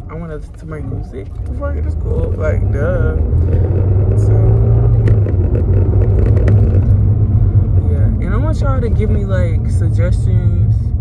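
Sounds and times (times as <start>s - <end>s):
car engine and road noise: 0.0s - 11.0s.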